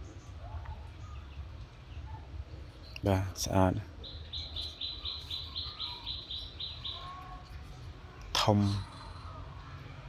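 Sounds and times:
small bird chirping: 0.0s - 9.8s.

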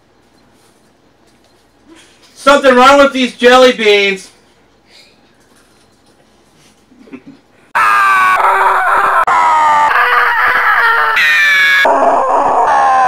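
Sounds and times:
drawn-out cries: 7.8s - 13.0s.

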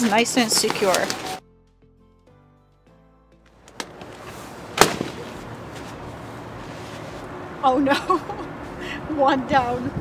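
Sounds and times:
balloon bursting bang: 4.8s - 5.2s.

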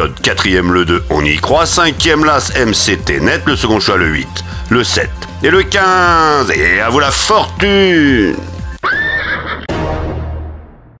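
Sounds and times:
background music: 0.0s - 11.0s
horse whinnying: 8.8s - 9.7s.

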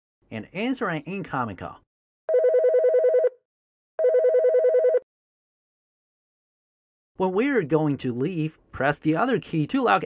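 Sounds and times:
desk phone ringing electronic warble: 2.3s - 3.4s, 4.0s - 5.0s.

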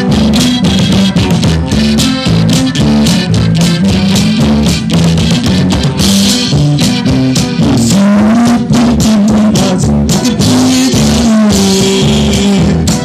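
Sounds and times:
accordion melody: 0.0s - 13.0s
drums with steady beat: 0.0s - 13.0s
electric bass: 0.0s - 13.0s
guitar: 0.0s - 13.0s.

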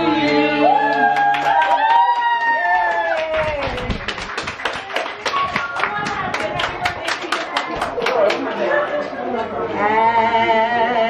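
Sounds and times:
people clapping in rhythm: 0.3s - 8.7s.

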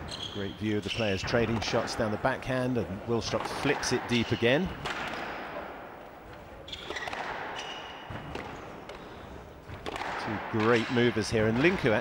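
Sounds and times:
shoes squeaking on court floor: 0.0s - 2.0s, 6.2s - 10.0s
squash ball hitting rackets and walls: 0.9s - 12.0s.

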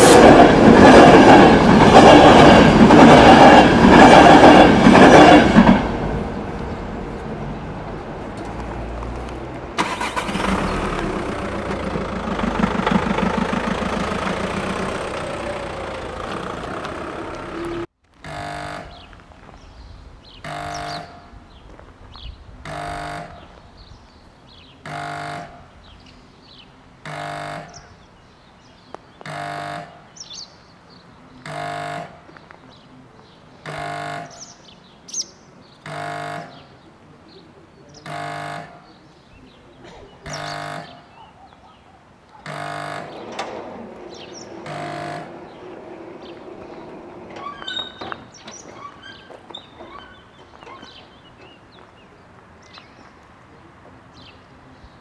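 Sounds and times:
train passing: 0.0s - 17.9s, 42.5s - 50.1s
level crossing warning horn: 14.0s - 19.2s, 20.4s - 21.4s, 22.7s - 23.6s, 24.8s - 25.8s, 27.0s - 27.9s, 29.2s - 30.1s, 31.4s - 32.3s, 33.6s - 34.6s, 35.8s - 36.8s, 38.0s - 38.9s, 40.3s - 41.1s, 42.4s - 43.6s, 44.4s - 45.8s
faint birdsong: 18.9s - 55.0s.

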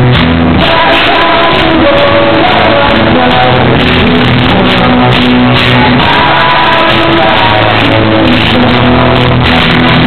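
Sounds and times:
live rock band: 0.0s - 10.0s
man singing: 0.0s - 10.0s.

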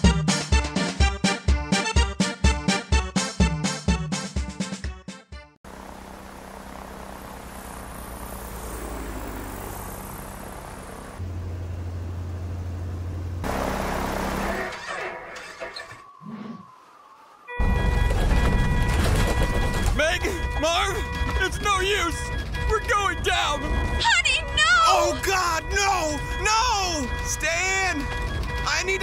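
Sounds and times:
cartoon propeller plane droning: 5.7s - 15.5s.

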